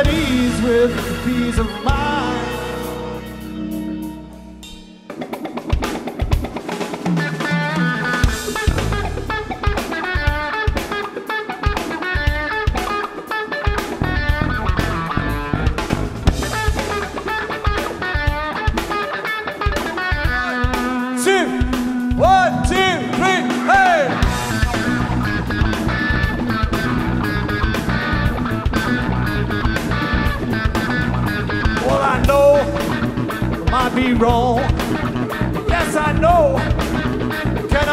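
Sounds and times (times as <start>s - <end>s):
blues-rock band playing: 0.0s - 37.9s
electric guitar melodic lines: 0.0s - 37.9s.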